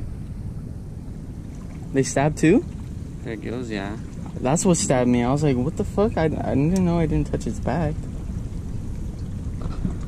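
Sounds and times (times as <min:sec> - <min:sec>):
low rumble of outdoor noise: 0:00.0 - 0:10.0.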